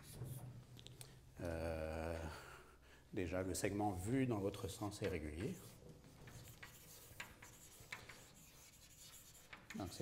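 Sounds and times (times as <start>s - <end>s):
chalk tapping on blackboard: 4.6s - 10.0s
chalk scratching on blackboard: 4.7s - 10.0s.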